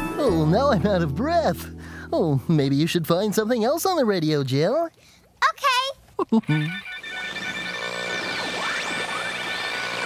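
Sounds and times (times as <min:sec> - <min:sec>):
radio tuning whistles: 0:07.0 - 0:10.0.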